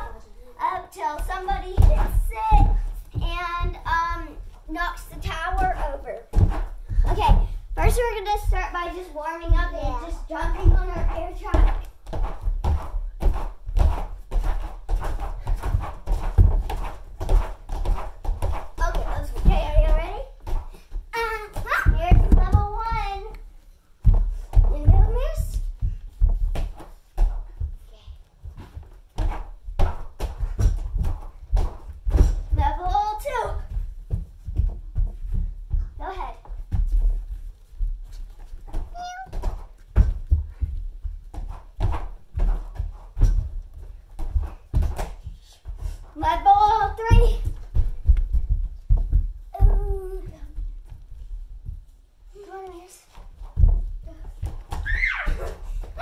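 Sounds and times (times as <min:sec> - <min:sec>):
children shrieking and chattering: 0:54.8 - 0:55.6.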